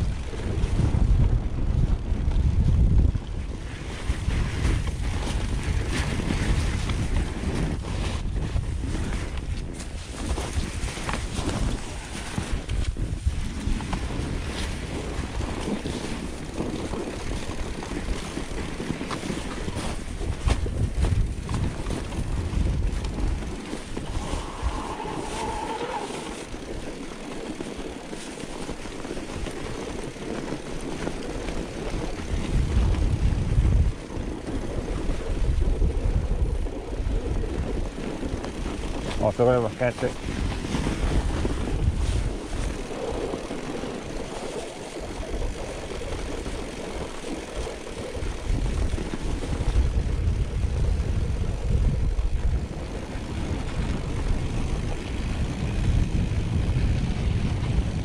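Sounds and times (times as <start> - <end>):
bike rolling on snow: 0.0 - 58.0
wind buffeting microphone: 0.0 - 58.0
bike knocks and rattles: 3.8 - 24.6.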